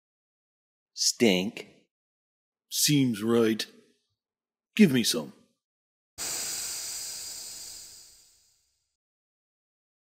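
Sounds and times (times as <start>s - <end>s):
gas spraying hiss: 6.2s - 8.6s.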